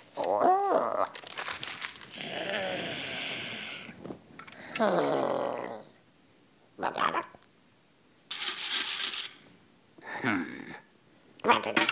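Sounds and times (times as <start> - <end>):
crumpled paper rustling: 0.0 - 2.3
faint creature-like voice: 0.2 - 1.2, 2.1 - 4.0, 4.6 - 6.0, 10.0 - 11.9
steady hiss: 2.0 - 4.7.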